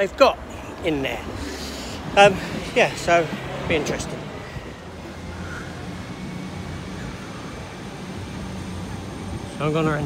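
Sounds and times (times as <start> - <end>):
engine hum: 0.0 - 10.0
traffic rumble: 0.0 - 10.0.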